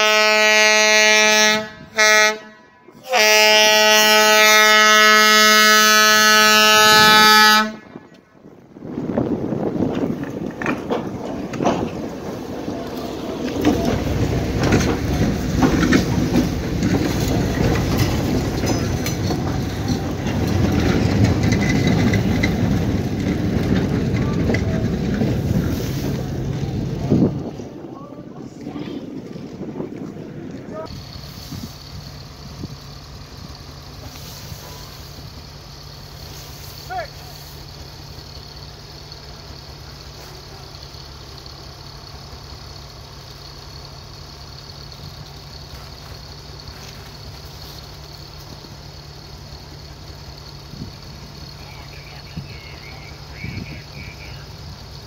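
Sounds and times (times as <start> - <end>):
train rumbling past: 0.0 - 55.0.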